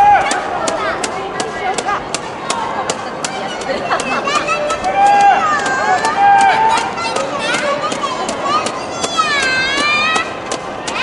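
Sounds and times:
crowd noise: 0:00.0 - 0:11.0
spectators shouting encouragement: 0:00.0 - 0:11.0.

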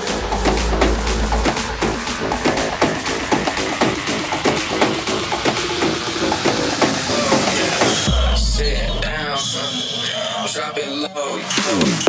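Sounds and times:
hissing noise wash: 0:00.0 - 0:04.4
synth notes sliding downward: 0:00.0 - 0:05.1.

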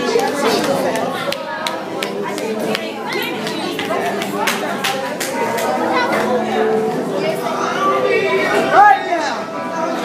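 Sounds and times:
indistinct chatter of voices: 0:00.0 - 0:10.0.

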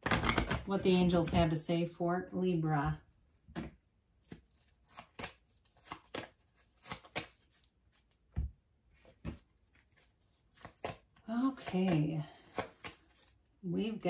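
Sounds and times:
cards tapping and flicking: 0:03.6 - 0:08.5, 0:09.2 - 0:13.4.

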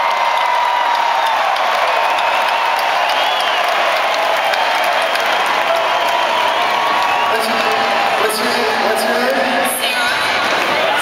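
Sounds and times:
crowd cheering and applauding: 0:00.0 - 0:11.0.

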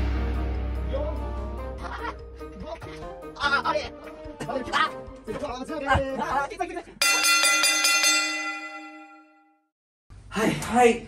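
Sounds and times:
bell struck rapidly: 0:07.0 - 0:09.5.

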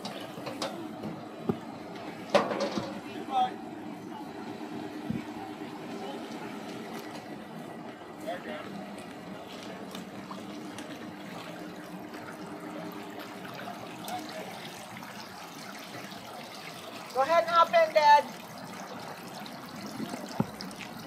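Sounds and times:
low engine hum: 0:00.0 - 0:21.0
water lapping against boat hull: 0:05.0 - 0:21.0.

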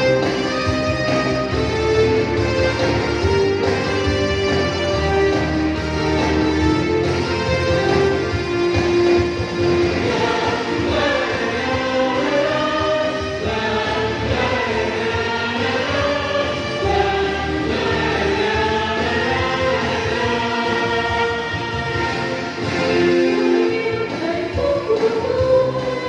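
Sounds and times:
instrumental accompaniment with bass: 0:00.0 - 0:26.0
vocal group singing: 0:09.7 - 0:26.0.

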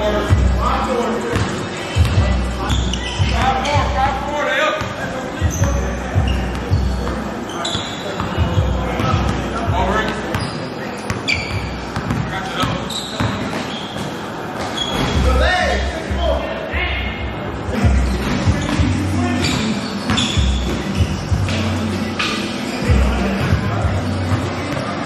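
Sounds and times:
players' voices: 0:00.0 - 0:25.0
sneaker squeaks: 0:01.2 - 0:15.8, 0:17.8 - 0:25.0
basketball bouncing on gym floor: 0:04.8 - 0:14.1.

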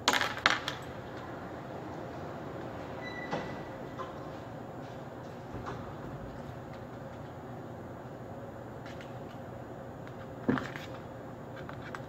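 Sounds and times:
background hum: 0:00.0 - 0:12.0.

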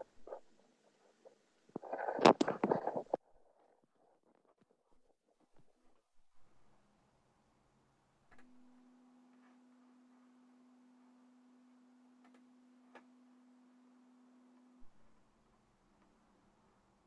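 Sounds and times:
faint steady pure tone: 0:00.0 - 0:17.0.

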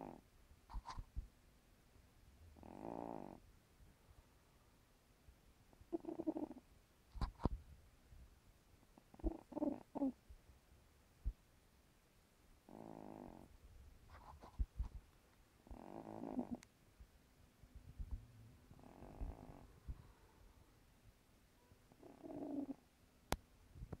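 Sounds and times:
cat snoring: 0:02.6 - 0:03.4, 0:05.9 - 0:06.6, 0:09.1 - 0:10.2, 0:12.6 - 0:13.5, 0:15.6 - 0:16.6, 0:18.7 - 0:19.8, 0:21.9 - 0:22.8.

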